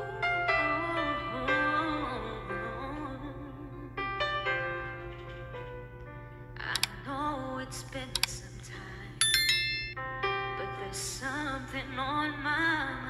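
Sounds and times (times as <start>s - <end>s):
woman singing: 0.0s - 4.6s, 6.6s - 9.2s, 10.5s - 13.0s
keyboard chords: 0.0s - 7.3s, 9.2s - 13.0s
bright bell-like chime: 9.2s - 10.0s.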